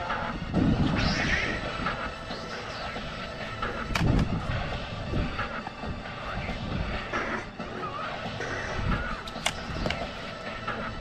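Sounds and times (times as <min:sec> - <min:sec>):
wind buffeting microphone: 0:00.3 - 0:02.3, 0:03.5 - 0:07.2.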